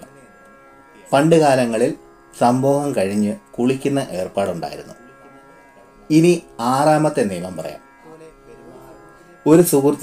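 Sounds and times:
faint instrumental music: 0.0 - 10.0.

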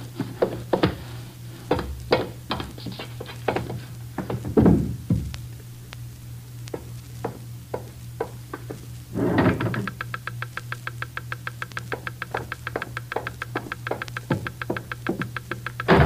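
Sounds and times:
geiger counter clicks: 9.6 - 16.0.

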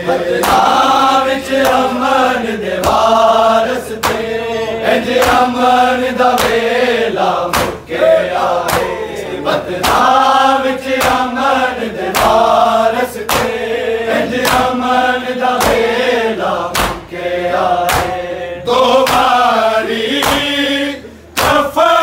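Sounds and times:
men chanting together: 0.0 - 22.0.

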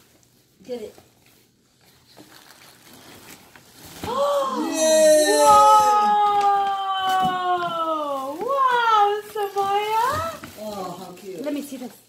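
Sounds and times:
plastic wrapping crinkling: 0.0 - 4.6, 5.7 - 12.0.

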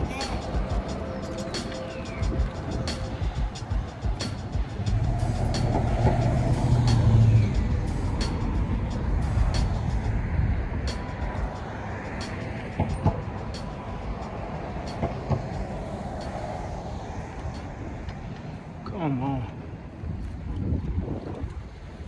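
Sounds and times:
vehicle engine hum passing: 0.0 - 20.6
wind and road rumble: 0.0 - 22.0.

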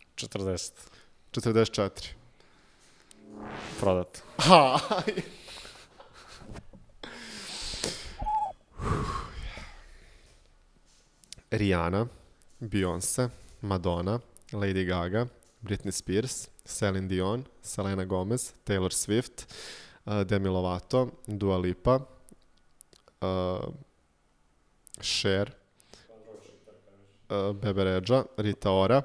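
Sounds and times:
loud gasping breath: 7.0 - 10.4, 19.5 - 20.0
man breathing close to microphone: 7.0 - 10.4
high hooting vocal note: 8.2 - 8.6
man speaking a word: 26.1 - 27.2.

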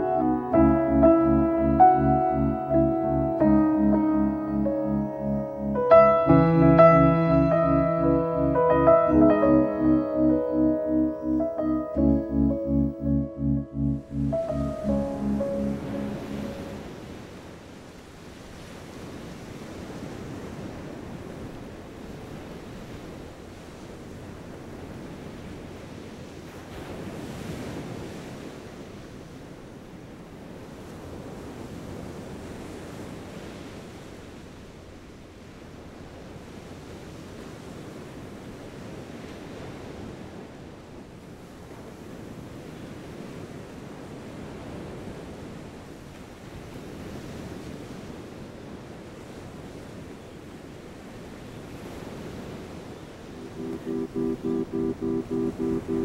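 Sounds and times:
music with repeating guitar figure: 0.0 - 16.5, 53.4 - 56.0.

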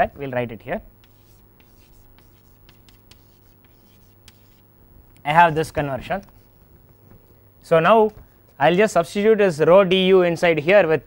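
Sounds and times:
chalk tapping: 1.0 - 4.6
chalk scratching on chalkboard: 1.0 - 4.7.

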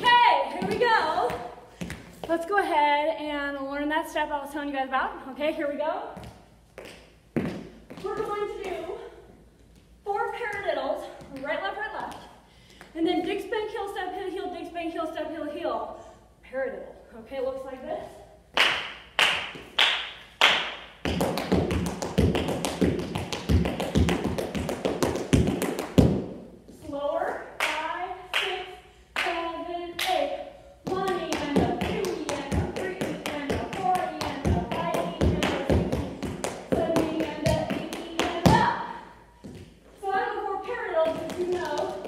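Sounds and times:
woman's voice: 0.0 - 1.5, 2.3 - 6.2, 8.0 - 9.2, 10.1 - 18.3, 26.8 - 35.9, 36.7 - 39.0, 40.0 - 42.0.

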